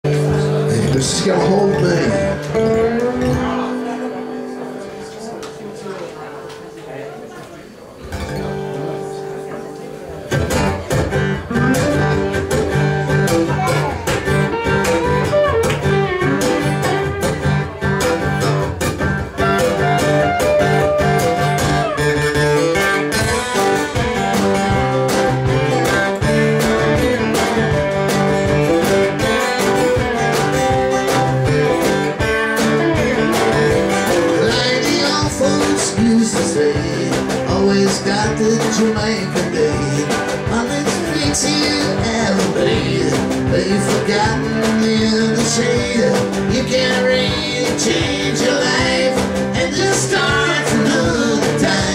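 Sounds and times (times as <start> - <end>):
acoustic guitars strumming: 0.0 - 7.4, 8.0 - 51.9.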